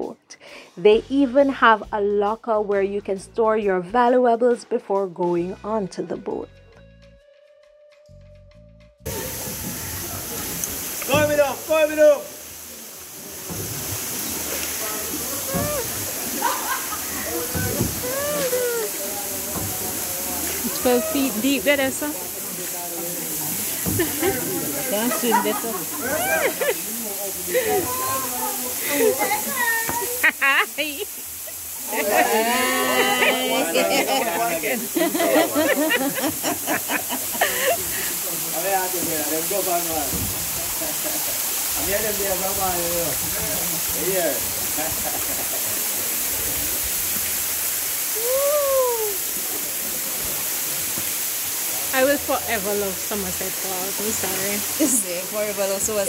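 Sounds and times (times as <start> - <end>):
people talking and laughing: 9.1 - 50.9, 51.6 - 56.0
waterfall rushing: 9.1 - 56.0.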